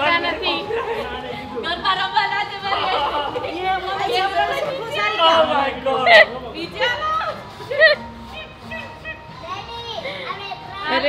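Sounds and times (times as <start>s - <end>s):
adults and children talking excitedly: 0.0s - 11.0s.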